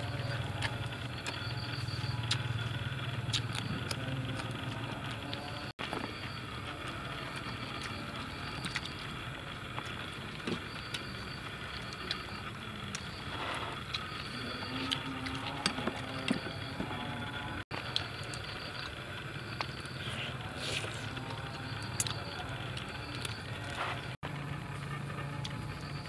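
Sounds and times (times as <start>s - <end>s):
steady background hum: 0.0s - 26.0s.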